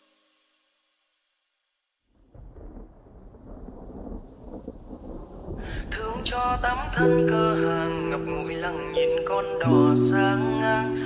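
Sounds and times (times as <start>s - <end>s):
low rumbling rain and thunder: 2.2s - 9.0s
melodic line: 7.0s - 11.0s.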